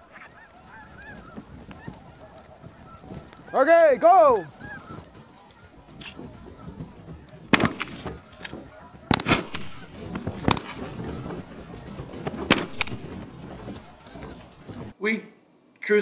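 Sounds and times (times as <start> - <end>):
shotguns firing: 7.5 - 11.4, 12.3 - 13.2.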